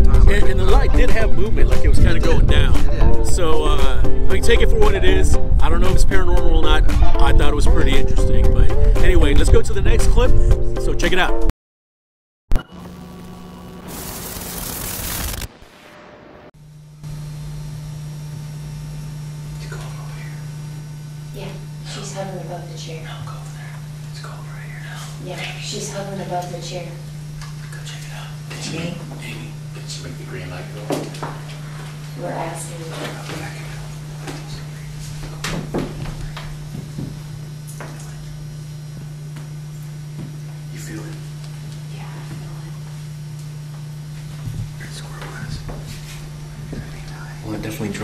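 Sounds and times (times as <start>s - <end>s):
low electrical hum: 16.6s - 48.0s.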